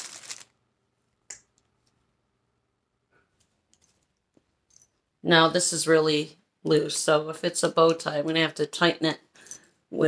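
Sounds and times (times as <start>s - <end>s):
plastic packaging crinkling: 0.0s - 0.7s.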